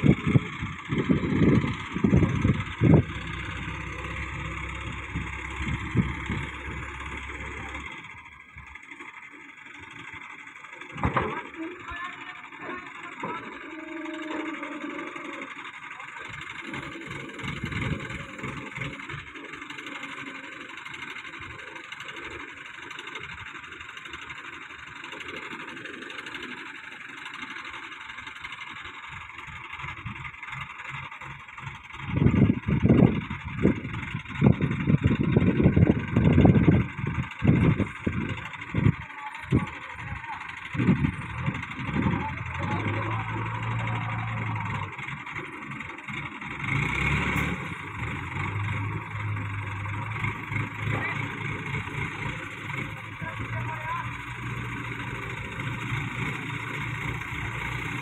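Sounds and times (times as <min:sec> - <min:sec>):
low hum: 0:00.0 - 0:08.8
low rumbling bursts: 0:00.0 - 0:08.8, 0:31.2 - 0:58.0
crane engine running: 0:00.0 - 0:58.0.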